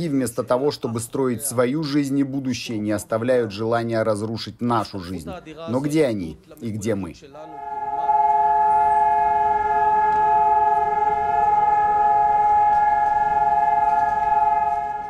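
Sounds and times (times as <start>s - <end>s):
steady wailing siren: 7.5s - 15.0s.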